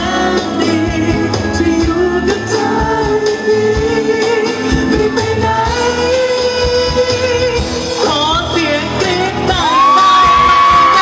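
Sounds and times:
amplified backing music with drum beat: 0.0 - 11.0
man singing into a microphone: 0.0 - 11.0.

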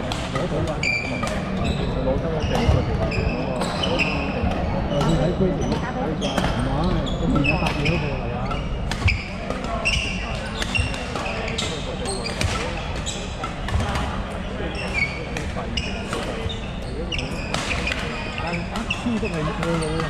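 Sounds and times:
people talking: 0.0 - 20.0
shoes squeaking on wooden floor: 0.8 - 4.4, 14.7 - 20.0
racket hitting shuttlecock: 8.8 - 14.1.

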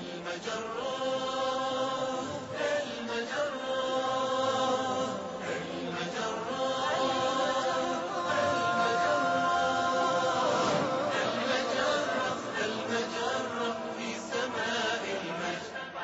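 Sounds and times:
voices chanting long notes: 0.0 - 16.0.

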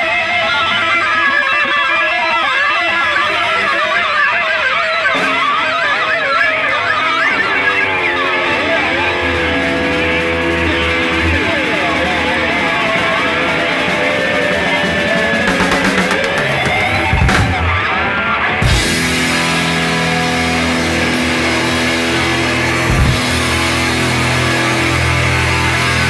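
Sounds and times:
electric guitar solo: 0.0 - 26.0
bass line: 7.0 - 26.0.

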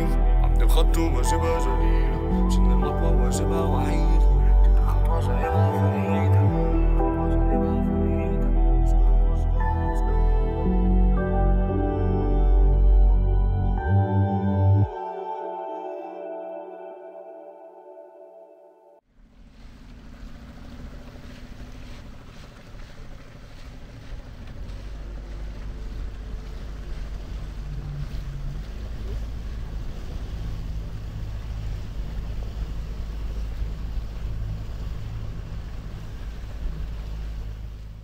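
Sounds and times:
water noise: 0.0 - 17.9, 19.0 - 38.0
outboard engine humming: 0.0 - 38.0
wind rumbling on microphone: 19.4 - 38.0.

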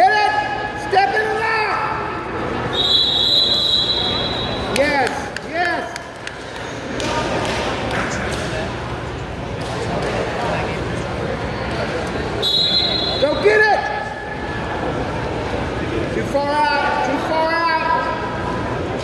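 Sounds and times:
referee's whistle: 2.7 - 4.8, 12.4 - 13.4.

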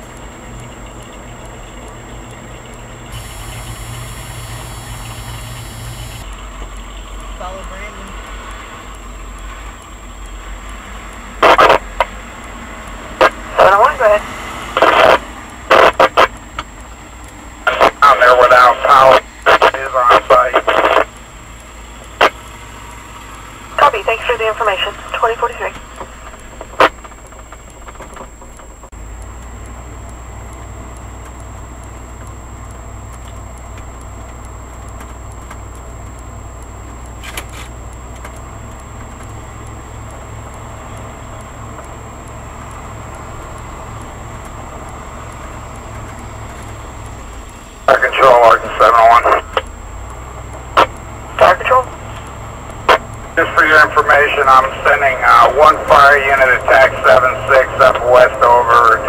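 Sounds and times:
vehicle engine and road hum: 0.0 - 59.0
two-way radio voices: 11.4 - 12.1, 13.2 - 16.4, 17.6 - 21.1, 22.2 - 22.4, 23.8 - 26.1, 47.8 - 49.7, 50.8 - 59.0.

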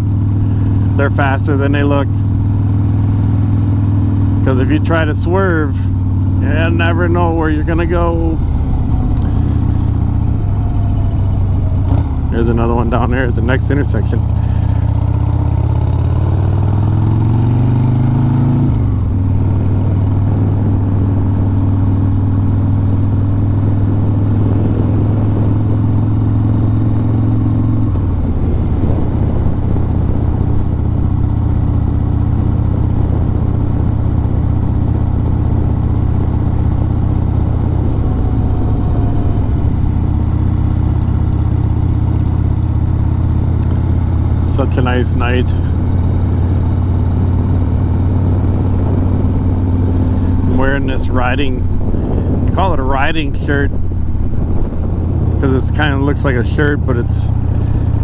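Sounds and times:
motorcycle engine while riding: 0.0 - 58.0.

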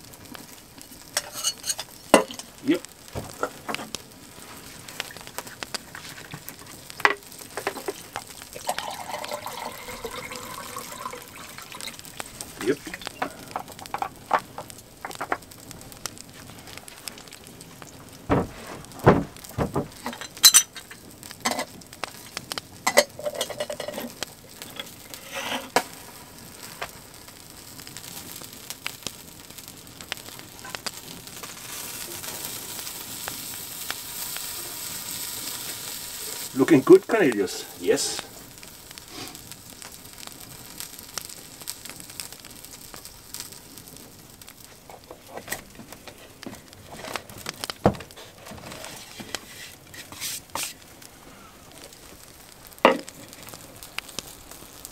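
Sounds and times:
chicken sizzling on grill: 0.0 - 54.9
wood fire crackling: 0.0 - 54.9.

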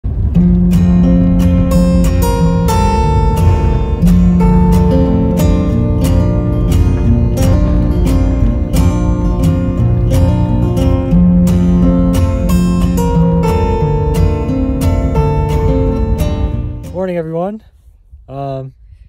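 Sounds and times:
acoustic guitar strumming: 0.1 - 17.5.

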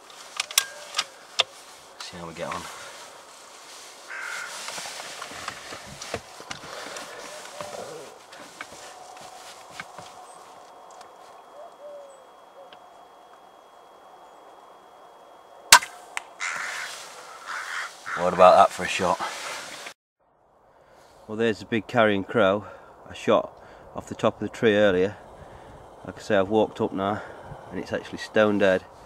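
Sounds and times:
crows cawing: 0.5 - 1.8, 2.4 - 10.6, 15.7 - 19.8
air rifle shot: 15.7 - 16.0.

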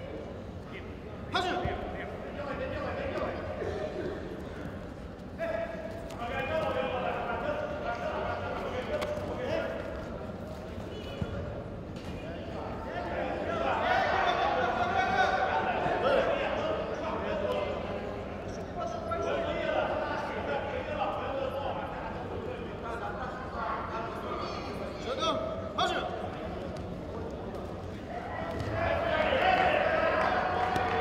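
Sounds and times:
people shouting in a hall: 12.5 - 17.2, 28.0 - 31.0.

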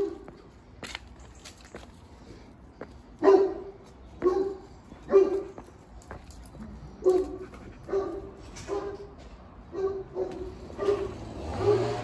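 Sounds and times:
dog barking: 0.0 - 0.3, 3.2 - 5.6, 7.0 - 9.1, 9.7 - 12.0.

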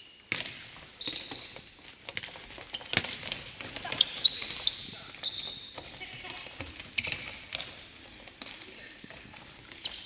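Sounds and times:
shoes squeaking on wooden floor: 0.5 - 8.1.

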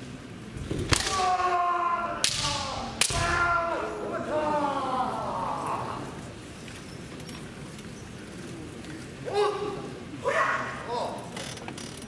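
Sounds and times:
bamboo sword strikes cracking: 0.7 - 1.4, 2.2 - 3.5
fencers shouting: 0.9 - 6.3, 9.2 - 11.3.

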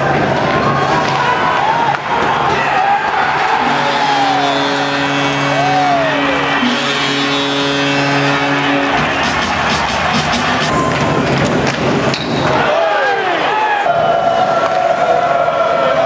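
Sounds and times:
crowd cheering: 0.0 - 16.0
loud held musical chord: 3.6 - 10.2.

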